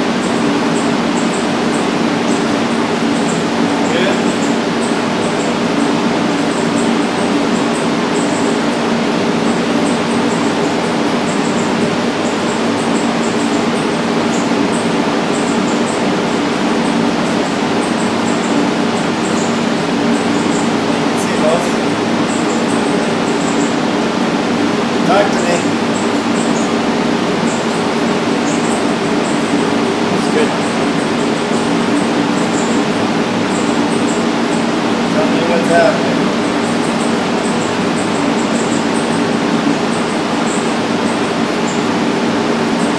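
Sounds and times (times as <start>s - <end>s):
exhaust fan rushing and humming: 0.0s - 42.9s.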